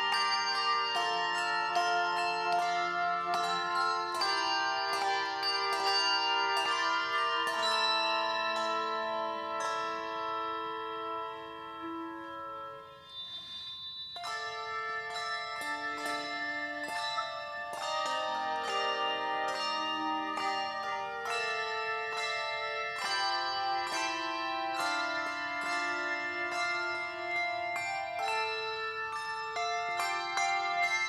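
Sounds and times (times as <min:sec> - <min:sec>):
handbell choir playing chords: 0:00.0 - 0:31.0.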